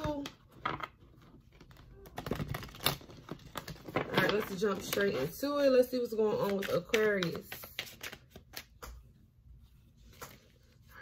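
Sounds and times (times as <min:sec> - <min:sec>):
cards being shuffled: 0:06.3 - 0:09.0, 0:10.0 - 0:10.8.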